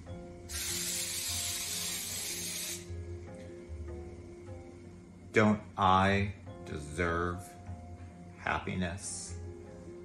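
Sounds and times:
background music: 0.0 - 10.0
aerosol spray hiss: 0.5 - 3.0.

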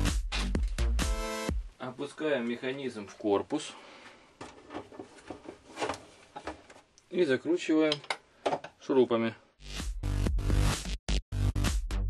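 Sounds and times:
plastic rubbing: 4.0 - 6.9.

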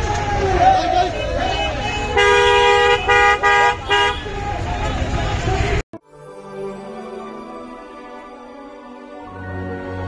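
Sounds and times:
crowd hubbub: 0.0 - 5.8
vehicle horn honking: 1.1 - 4.4.

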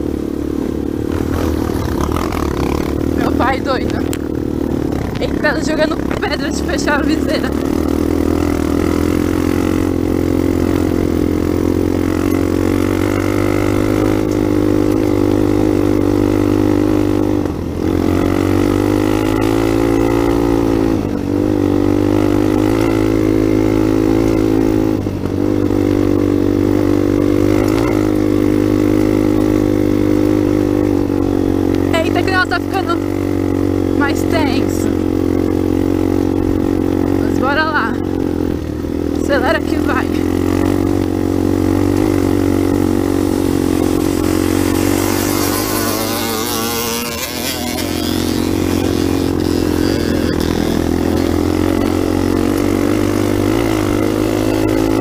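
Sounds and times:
motorcycle engine running: 0.0 - 55.0.

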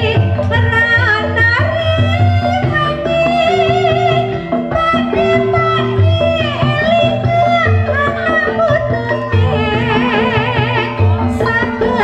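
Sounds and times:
gamelan accompaniment: 0.0 - 12.0
woman singing ornamented line: 0.0 - 12.0.

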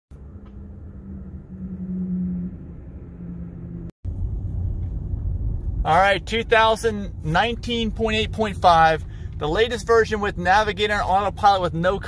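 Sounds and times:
car cabin hum: 0.1 - 12.0
road noise rumble: 0.1 - 12.0.

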